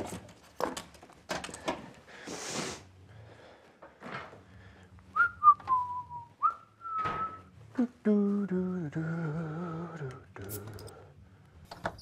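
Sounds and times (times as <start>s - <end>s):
man whistling a tune: 5.1s - 7.5s.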